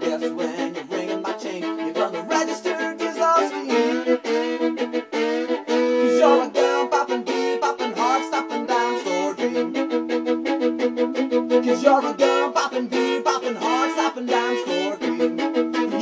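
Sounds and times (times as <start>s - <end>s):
fast fiddle playing: 0.0s - 16.0s.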